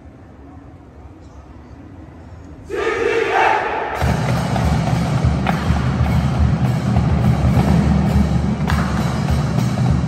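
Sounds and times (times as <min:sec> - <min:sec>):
group of voices shouting together: 0:02.7 - 0:04.0.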